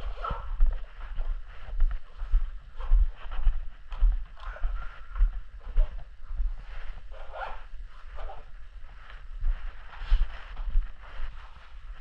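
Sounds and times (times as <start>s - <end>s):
clothing rustling and scraping: 0.0s - 12.0s.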